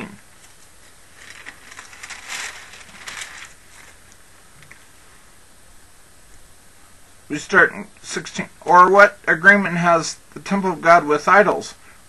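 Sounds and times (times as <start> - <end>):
paper pages rustling: 0.0 - 4.8.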